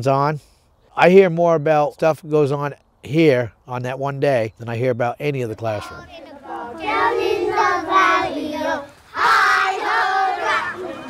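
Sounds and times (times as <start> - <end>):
children singing in unison: 5.9 - 11.0.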